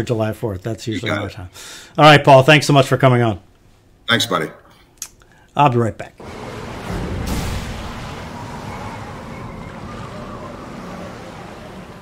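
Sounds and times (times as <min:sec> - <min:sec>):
waves rushing: 0:06.2 - 0:12.0
wind: 0:06.2 - 0:12.0.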